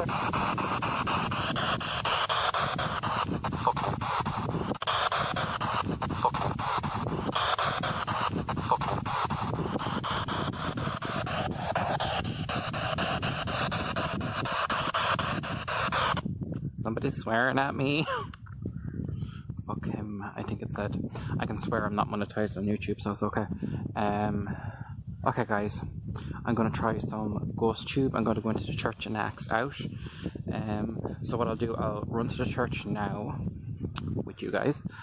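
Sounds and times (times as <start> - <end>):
radio static hissing: 0.0 - 16.2
voice-like radio fragments: 0.0 - 16.2.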